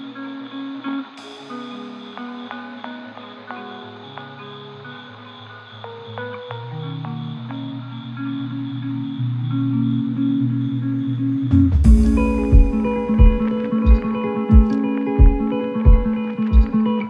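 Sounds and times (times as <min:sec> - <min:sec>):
short plucked notes: 0:11.5 - 0:16.8
sustained low bass notes: 0:11.6 - 0:16.1.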